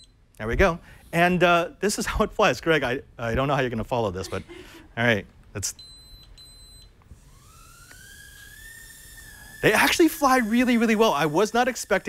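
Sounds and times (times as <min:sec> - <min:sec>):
quadcopter motors whining: 0:07.1 - 0:12.0.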